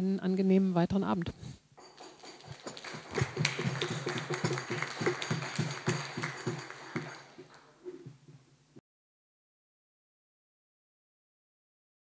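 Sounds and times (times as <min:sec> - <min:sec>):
small audience applauding: 0:01.8 - 0:08.1.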